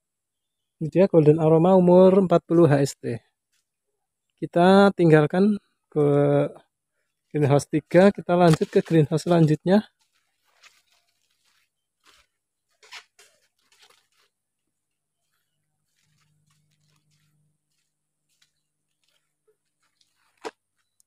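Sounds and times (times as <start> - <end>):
footsteps on soil path: 7.1 - 21.0.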